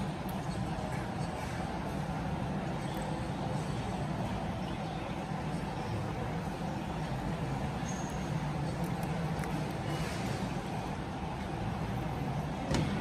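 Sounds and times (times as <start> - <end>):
faint murmur of voices: 0.0 - 13.0.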